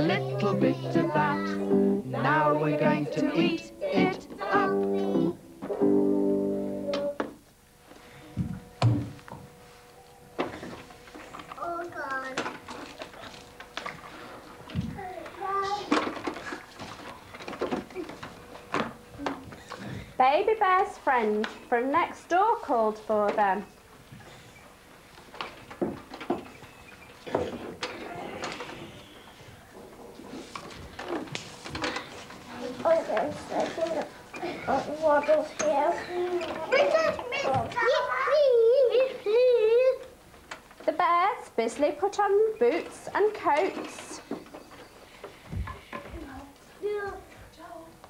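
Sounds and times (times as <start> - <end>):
faint child voices: 10.0 - 13.4, 14.8 - 16.7, 27.3 - 29.0, 31.8 - 40.1, 45.8 - 48.0
toys knocking and clattering: 10.4 - 14.0, 14.7 - 20.0, 25.3 - 26.6.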